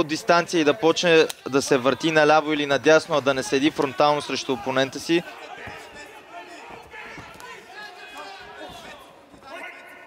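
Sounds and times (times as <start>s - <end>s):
arena crowd noise: 0.0s - 10.0s
faint shouting voices: 0.0s - 10.0s.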